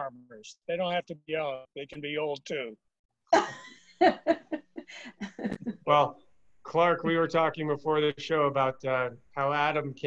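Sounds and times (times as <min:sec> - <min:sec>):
woman laughing: 0:03.4 - 0:05.7.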